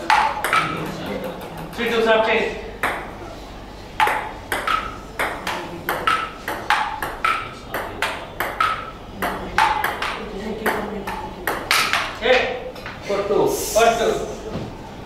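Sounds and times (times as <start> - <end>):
table tennis ball clicking: 0.1 - 1.8, 4.0 - 12.2.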